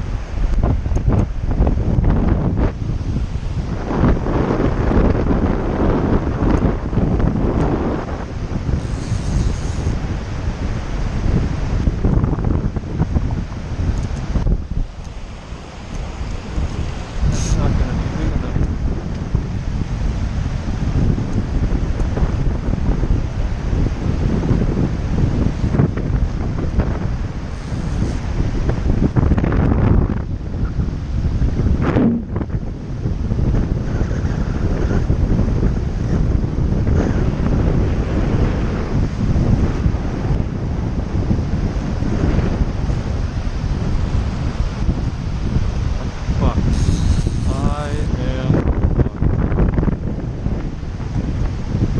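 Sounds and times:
shallow river current rushing: 0:00.0 - 0:33.8, 0:34.6 - 0:51.9
wind buffeting microphone: 0:00.0 - 0:51.9.

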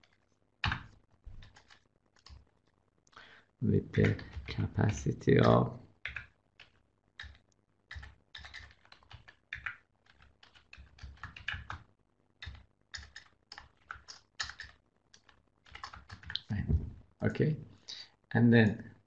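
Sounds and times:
typing on keyboard: 0:00.0 - 0:02.4, 0:04.0 - 0:04.6, 0:05.4 - 0:11.8, 0:12.4 - 0:16.6.

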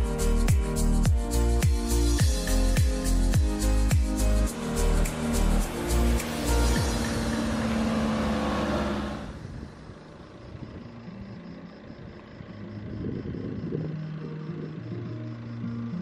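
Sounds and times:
soft background music: 0:00.0 - 0:09.0, 0:10.2 - 0:16.0
van driving past: 0:03.2 - 0:16.0.

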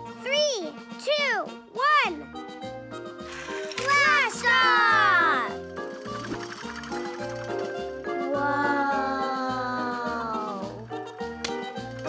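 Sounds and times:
cartoon music with bouncy bass beat: 0:00.0 - 0:12.0.

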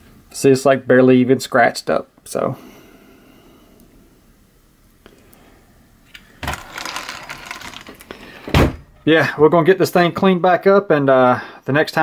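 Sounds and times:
toy car parts rattling: 0:06.4 - 0:08.1.

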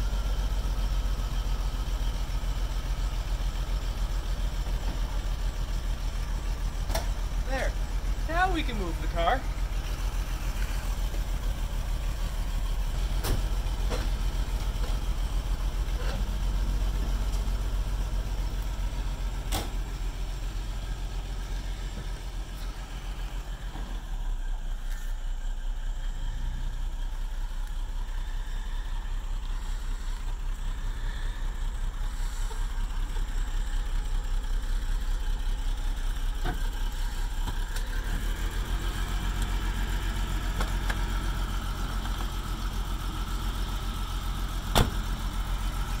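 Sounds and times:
car engine idling: 0:00.0 - 0:46.0.

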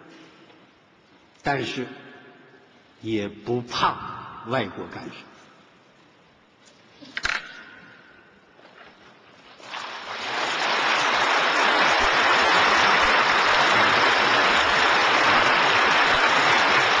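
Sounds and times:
audience applauding: 0:09.6 - 0:17.0.

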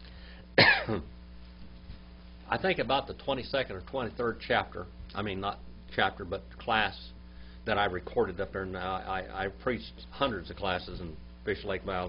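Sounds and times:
man coughing: 0:00.6 - 0:01.2.

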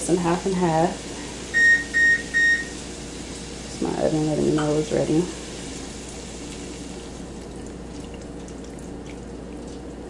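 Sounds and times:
crackling from the pan: 0:00.4 - 0:10.0.

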